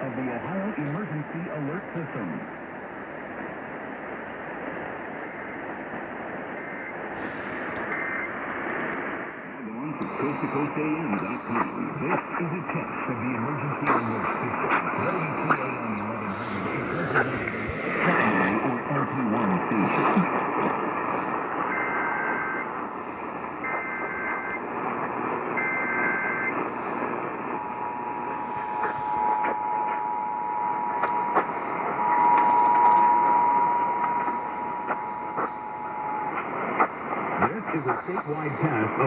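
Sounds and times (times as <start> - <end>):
radio static hiss: 0.0 - 39.0
two-tone attention signal: 27.6 - 36.5.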